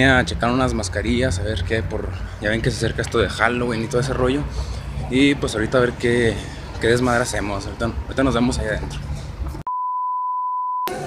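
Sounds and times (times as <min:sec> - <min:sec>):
high censor beep: 0:09.7 - 0:10.9.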